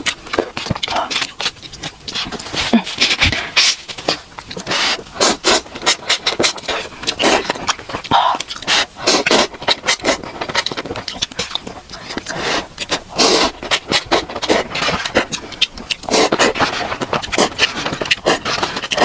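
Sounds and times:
slurping and chewing noodles: 0.0 - 19.0.

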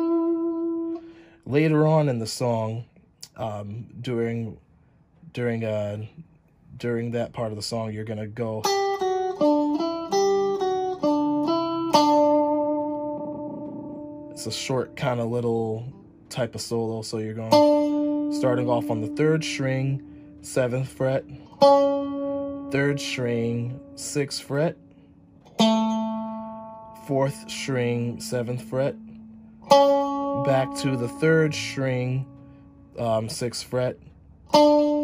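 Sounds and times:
electric guitar solo notes: 0.0 - 1.3, 8.6 - 33.9, 34.5 - 35.0.

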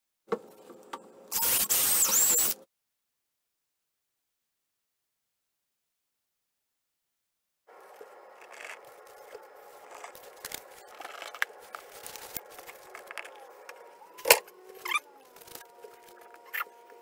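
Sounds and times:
faint steady hum: 7.7 - 17.0.

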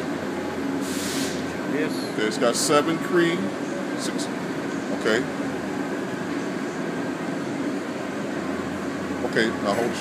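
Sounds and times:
mechanical droning hum: 0.0 - 10.0.

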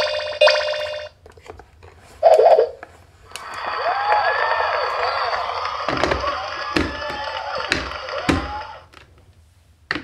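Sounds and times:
plastic knocks: 5.9 - 8.6.

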